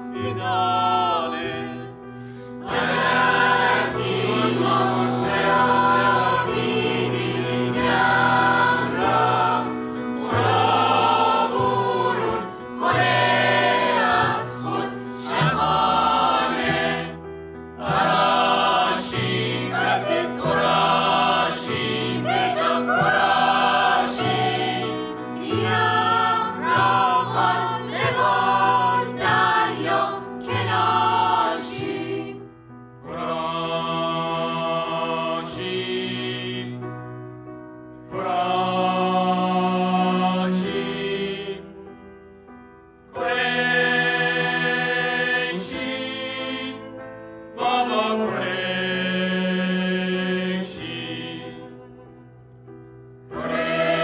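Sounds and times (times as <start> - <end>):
mixed choir singing: 0.0 - 36.9, 38.1 - 42.0, 43.1 - 52.2, 53.3 - 54.0.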